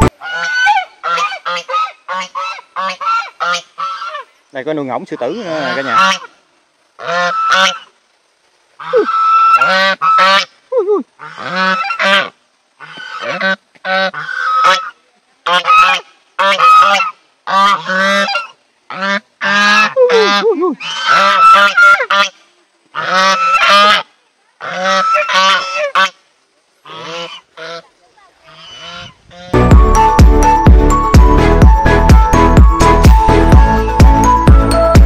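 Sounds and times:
geese honking: 0.0s - 6.4s, 7.0s - 8.0s, 8.8s - 10.5s, 11.2s - 26.2s, 26.8s - 34.8s.

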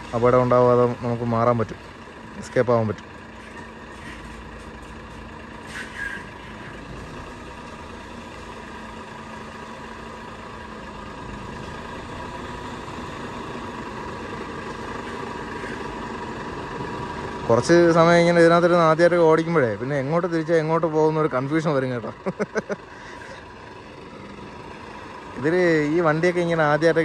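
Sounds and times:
diesel truck engine running: 0.0s - 27.0s.

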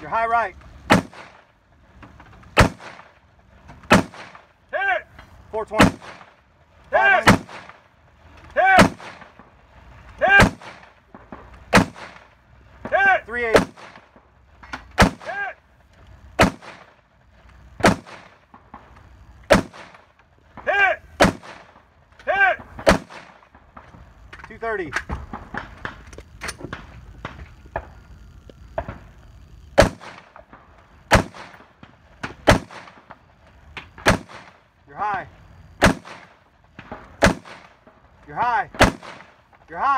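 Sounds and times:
rifle shots: 0.7s - 4.9s, 5.5s - 15.6s, 16.2s - 27.9s, 28.7s - 34.8s, 35.7s - 39.7s.

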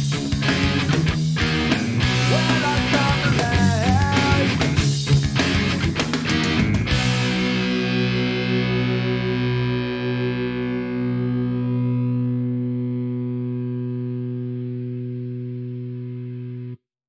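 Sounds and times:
distorted electric guitar chord ringing: 0.0s - 16.8s.

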